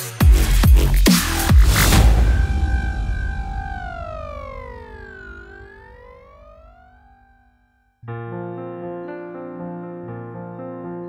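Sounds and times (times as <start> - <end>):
synthesizer sweep: 0.1 - 7.6.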